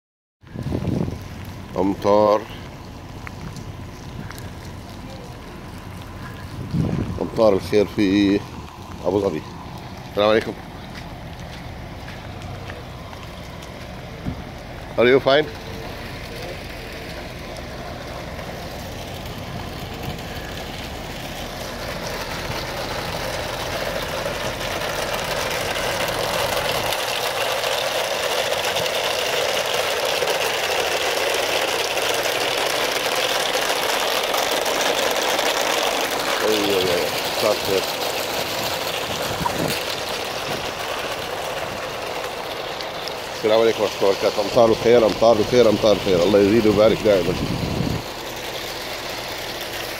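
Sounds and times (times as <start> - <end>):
low engine hum: 0.4 - 49.9
heavy rain falling: 2.6 - 49.9.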